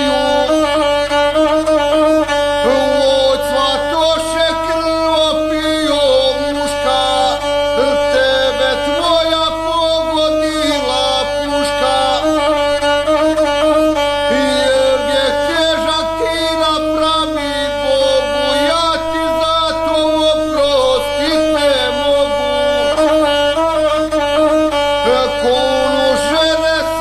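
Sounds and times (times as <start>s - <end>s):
bowed single-string fiddle melody: 0.0s - 27.0s.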